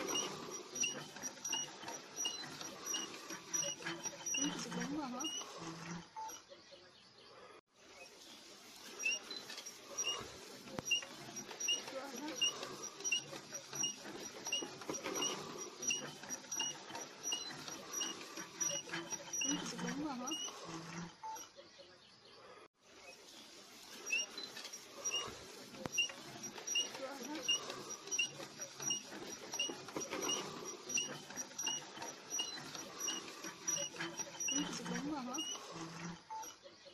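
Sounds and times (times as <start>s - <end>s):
auger scraping grind in soil: 0.0s - 6.4s, 7.4s - 21.4s, 22.4s - 36.6s
earth auger squeaking: 0.0s - 6.6s, 7.4s - 36.9s.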